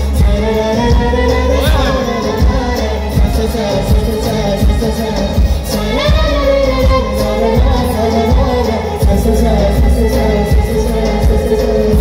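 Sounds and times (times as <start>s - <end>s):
band with heavy bass beat: 0.0s - 12.0s.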